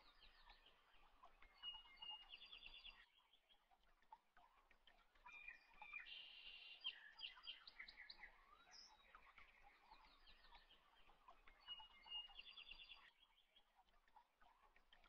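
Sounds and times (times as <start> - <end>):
faint birds chirping: 0.0 - 15.0.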